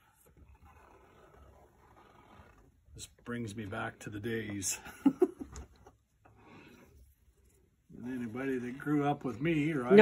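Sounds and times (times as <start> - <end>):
faint fabric rustle: 0.0 - 10.0.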